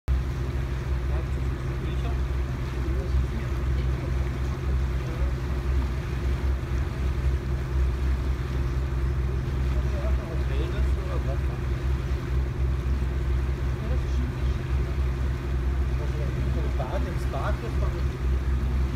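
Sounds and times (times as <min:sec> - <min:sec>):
boat engine humming: 0:00.0 - 0:18.9
lake water washing: 0:00.1 - 0:18.9.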